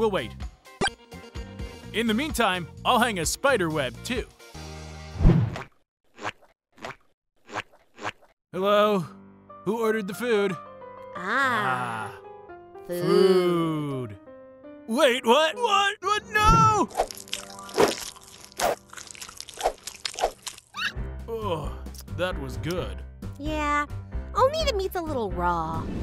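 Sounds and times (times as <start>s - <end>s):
cartoonish crunching bites: 16.8s - 20.9s.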